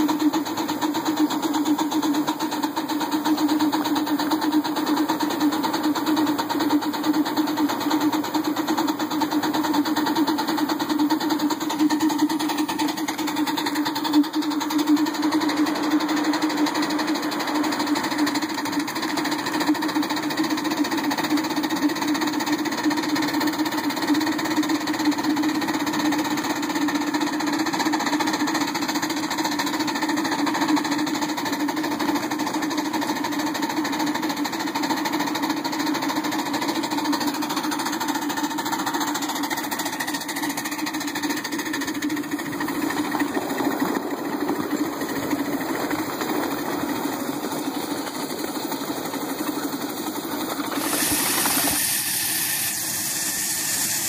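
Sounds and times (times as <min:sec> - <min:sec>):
miniature steam locomotive running: 0:00.0 - 0:54.0.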